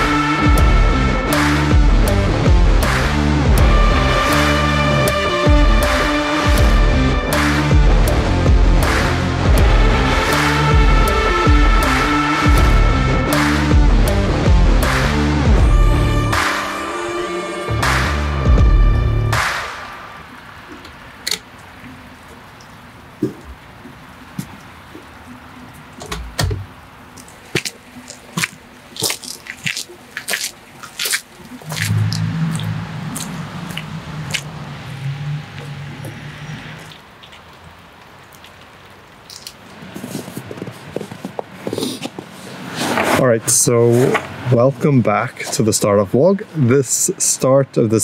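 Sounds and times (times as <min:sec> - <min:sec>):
music: 0:00.0 - 0:20.1
water dripping: 0:20.2 - 0:40.0.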